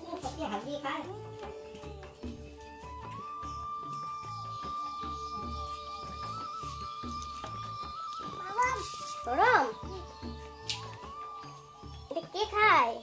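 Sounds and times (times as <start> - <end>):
music with steady beat: 0.0 - 13.0.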